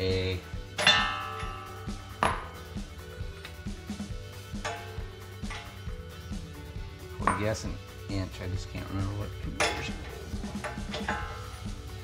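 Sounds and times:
background music: 0.0s - 12.0s
metal sockets clinking: 9.5s - 12.0s.

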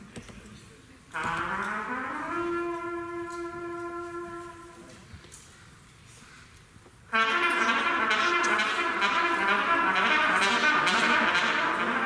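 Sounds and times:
solo trumpet notes: 1.1s - 5.0s, 7.1s - 12.0s.

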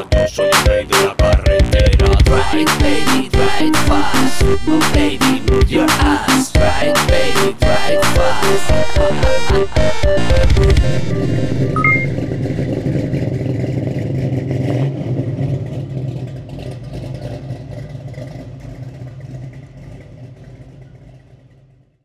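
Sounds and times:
car engine running: 0.0s - 21.8s.

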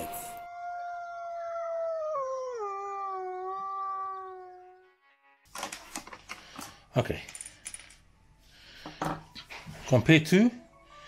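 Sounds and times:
wolf howl: 0.0s - 4.9s.

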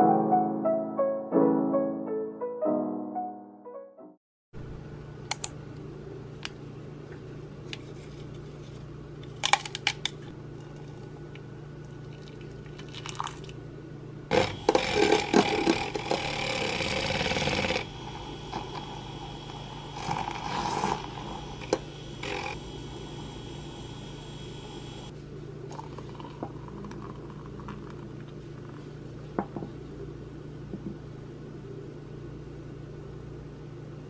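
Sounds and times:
milk frother whirring: 14.3s - 25.1s, 25.7s - 28.0s.

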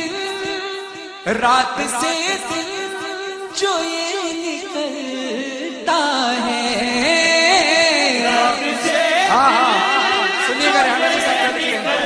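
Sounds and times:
man chanting devotional poem: 0.0s - 12.0s.

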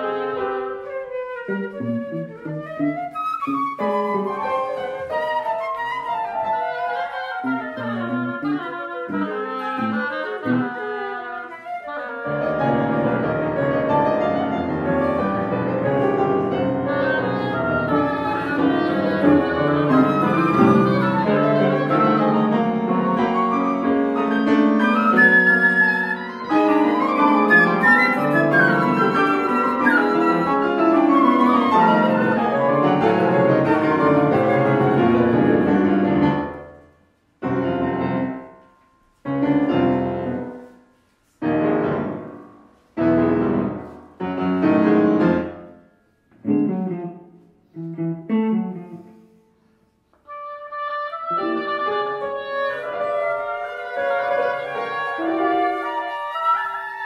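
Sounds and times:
chamber music ensemble: 0.0s - 57.0s.

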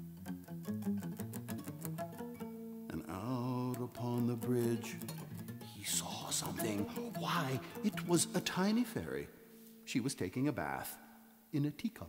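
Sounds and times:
fingerpicked twelve-string guitar: 0.0s - 9.9s.

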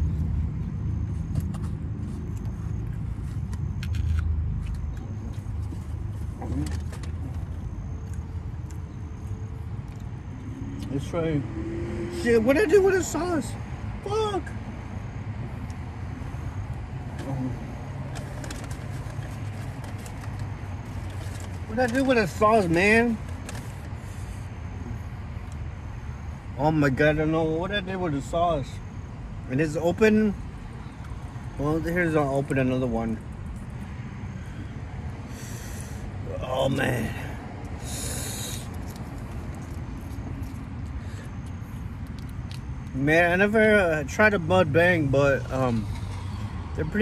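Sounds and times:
faint crinkling and ticks: 18.0s - 24.3s, 38.5s - 43.0s.

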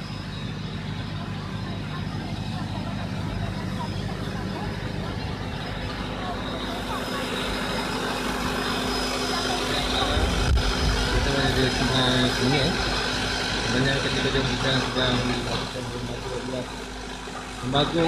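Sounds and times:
low mechanical hum: 0.0s - 18.0s
people talking: 0.0s - 18.0s.

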